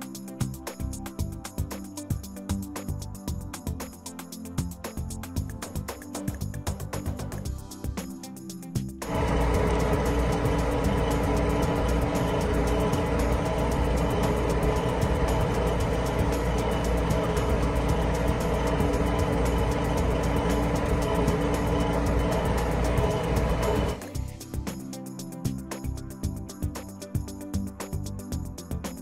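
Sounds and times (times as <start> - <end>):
background music: 0.0 - 29.0
tractor engine running: 9.0 - 24.2.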